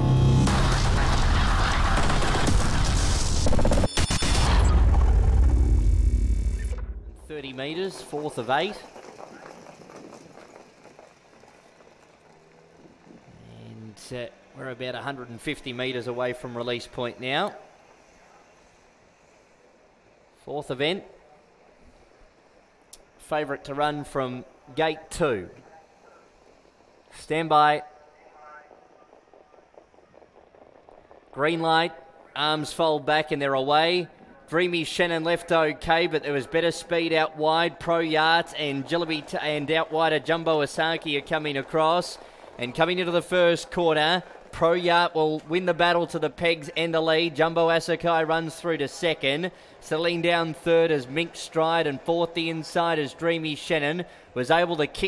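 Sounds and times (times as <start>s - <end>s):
intro music: 0.0s - 1.2s
deep rumble: 0.0s - 3.6s, 4.4s - 7.4s
booming sound effects: 0.0s - 7.4s
crackling: 0.0s - 55.0s
soft irregular crackling: 24.4s - 32.4s.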